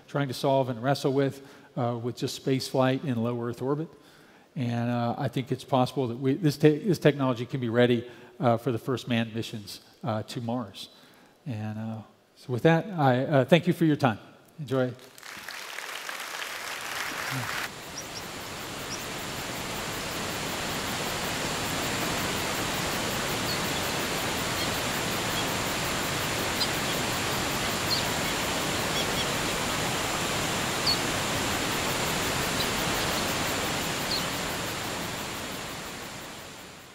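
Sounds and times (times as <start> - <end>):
waterfall rushing: 16.6 - 36.9
high bird chirps: 22.7 - 29.6, 30.8 - 31.1, 32.4 - 33.4, 34.0 - 34.4.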